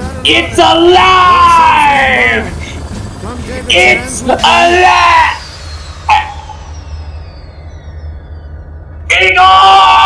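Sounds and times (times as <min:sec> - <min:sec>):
faint high whine falling in pitch: 0:00.2 - 0:10.0.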